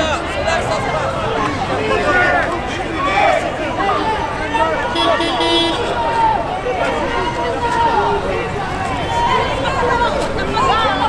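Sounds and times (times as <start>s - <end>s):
street crowd talking: 0.0s - 11.0s
vehicle horn honk: 4.9s - 6.0s.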